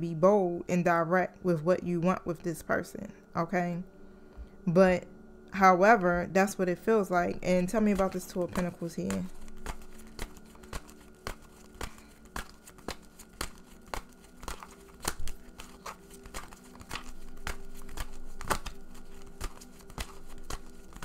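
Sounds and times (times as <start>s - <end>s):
faint steady hum: 0.0s - 21.0s
cards shuffled by hand: 7.6s - 21.0s.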